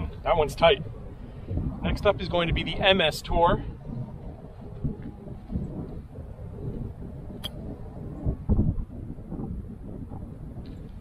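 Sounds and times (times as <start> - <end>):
low uneven rumble: 0.0 - 11.0.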